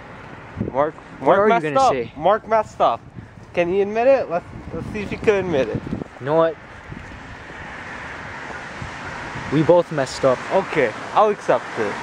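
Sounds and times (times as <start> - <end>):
traffic tyres on wet road: 4.3 - 12.0.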